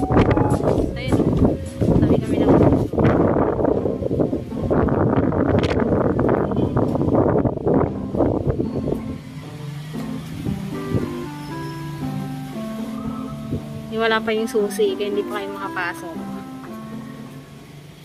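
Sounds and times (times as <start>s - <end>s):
wind noise on microphone: 0.0s - 14.5s
background music with held notes: 0.0s - 18.0s.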